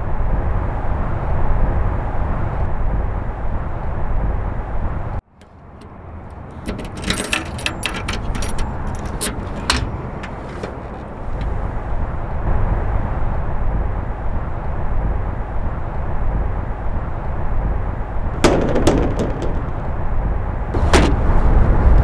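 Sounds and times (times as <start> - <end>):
low outdoor rumble: 0.0 - 22.0
car trunk lid slamming: 20.8 - 21.4.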